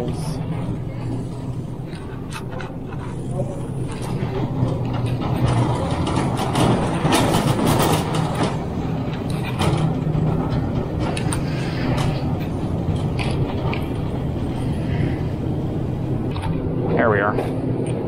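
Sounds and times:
shopping cart wheels rolling: 0.0s - 18.0s.

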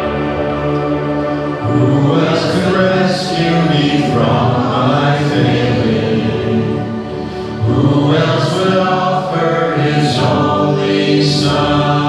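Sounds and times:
musical backing: 0.0s - 12.0s
voices singing: 0.0s - 12.0s.

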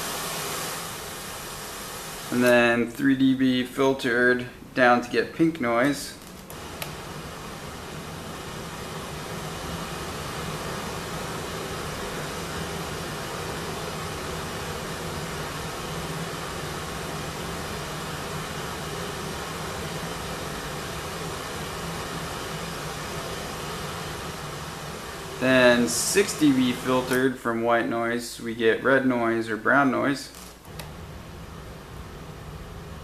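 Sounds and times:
steady noise hiss: 0.0s - 33.0s.

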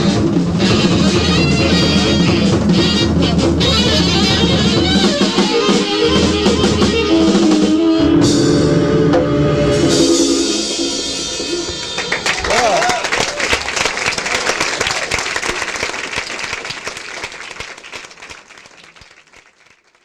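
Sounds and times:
jazz band chord ringing: 0.0s - 12.2s
audience applauding and cheering: 11.5s - 20.0s.

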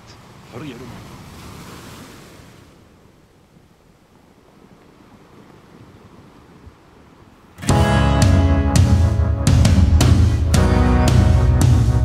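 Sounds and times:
sea surf: 0.0s - 12.0s
wind: 0.0s - 12.0s
music with plucked strings and beat: 7.6s - 12.0s.

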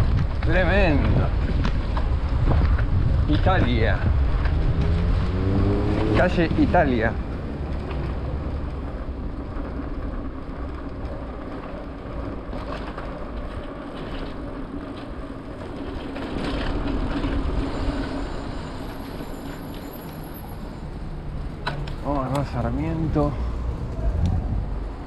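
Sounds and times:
wind noise on microphone: 0.0s - 18.6s, 23.0s - 25.0s
bike tyre rumble on asphalt: 0.0s - 25.0s.

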